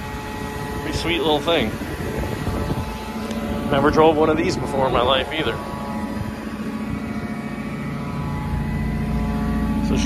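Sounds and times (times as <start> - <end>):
crane engine running: 0.0 - 10.0.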